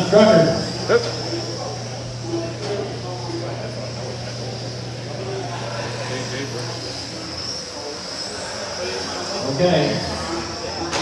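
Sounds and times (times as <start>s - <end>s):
faint background voices: 0.0s - 11.0s
steady low hum: 0.0s - 11.0s.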